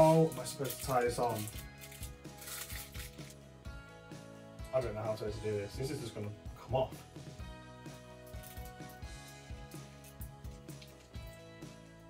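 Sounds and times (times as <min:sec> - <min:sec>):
background music with soft beat: 0:00.0 - 0:12.0.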